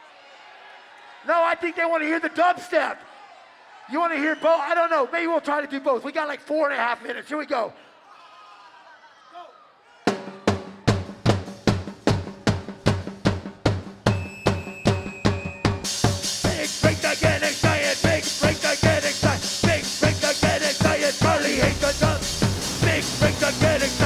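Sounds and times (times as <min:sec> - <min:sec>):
fast drum-kit beat: 0:10.1 - 0:24.0
live band playing: 0:10.8 - 0:24.0
high held tones: 0:14.1 - 0:24.0
cymbals crashing: 0:21.5 - 0:24.0.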